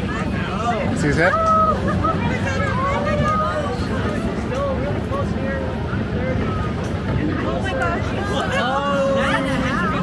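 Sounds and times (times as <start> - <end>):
people talking and exclaiming: 0.0 - 10.0.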